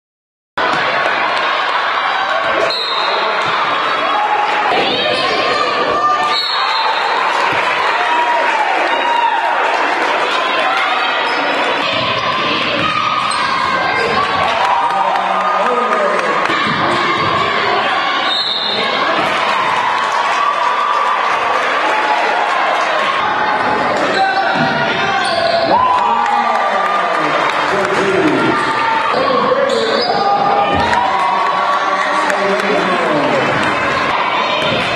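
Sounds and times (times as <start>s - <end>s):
players and crowd chatter: 0.6s - 34.9s
sneaker squeak: 2.7s - 3.3s, 6.2s - 7.0s, 11.2s - 14.2s, 18.2s - 18.9s, 24.1s - 25.7s, 29.6s - 30.4s.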